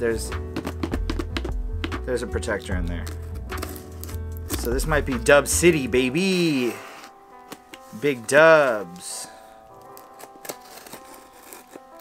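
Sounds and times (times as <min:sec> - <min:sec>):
quiet background music: 0:00.0 - 0:12.0
plastic packaging rustling: 0:03.0 - 0:04.8, 0:06.0 - 0:12.0.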